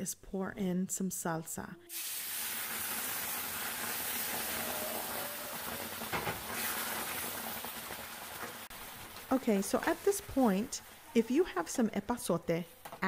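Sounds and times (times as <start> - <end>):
salsa sizzling in skillet: 1.9 - 11.8.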